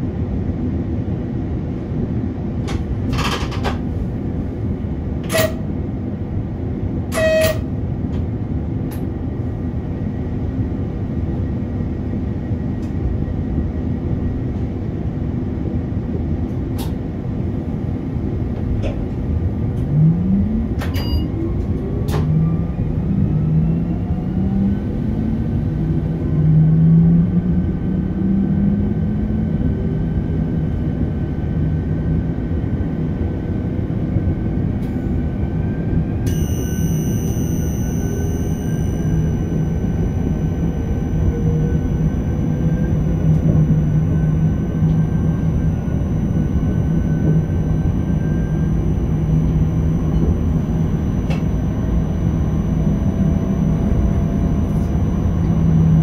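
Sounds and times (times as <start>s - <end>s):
train running rumble: 0.0s - 56.0s
electric traction motor whine: 35.5s - 56.0s
high electronic tone: 36.3s - 56.0s.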